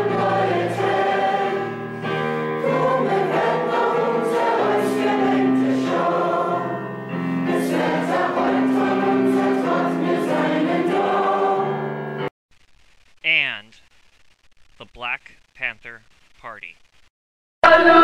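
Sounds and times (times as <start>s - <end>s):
choir singing sustained chords: 0.0s - 12.3s.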